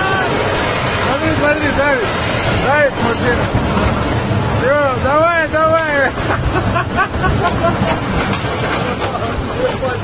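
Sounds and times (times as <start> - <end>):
tank engine and tracks running: 0.0 - 10.0
people's voices: 4.5 - 10.0.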